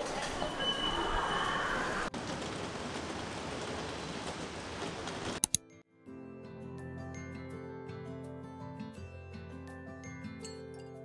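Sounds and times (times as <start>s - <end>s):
subway train rumbling: 0.0s - 5.4s
sharp clicks: 5.4s - 5.6s.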